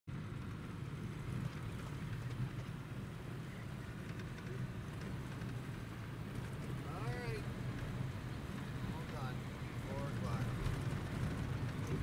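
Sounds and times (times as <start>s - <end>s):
truck engine and road noise: 0.1s - 12.0s.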